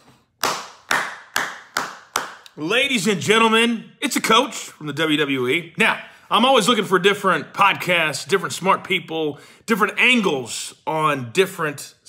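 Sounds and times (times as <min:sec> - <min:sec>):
man clapping hands: 0:00.4 - 0:02.6.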